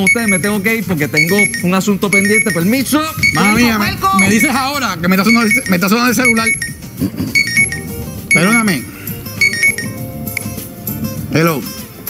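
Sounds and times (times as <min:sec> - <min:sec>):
cellphone ringtone melody: 0:00.0 - 0:10.8.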